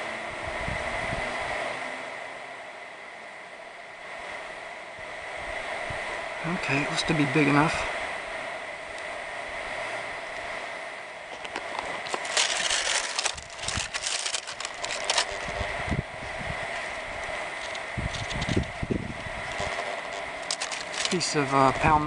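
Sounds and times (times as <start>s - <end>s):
wind buffeting microphone: 0.3s - 1.7s, 4.0s - 22.0s
dry frond rustling and crackling: 11.2s - 22.0s.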